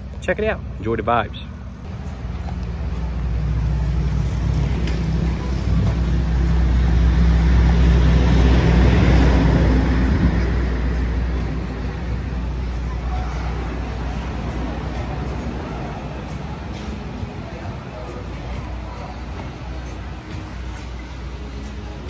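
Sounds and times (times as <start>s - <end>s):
vehicle engine rumble passing: 1.4s - 22.0s.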